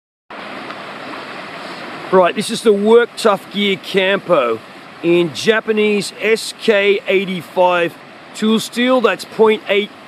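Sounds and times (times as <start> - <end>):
stream flowing: 0.3 - 10.0.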